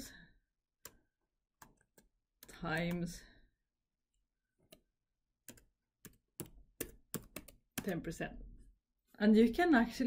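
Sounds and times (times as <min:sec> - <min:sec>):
computer keyboard typing: 0:04.7 - 0:08.0.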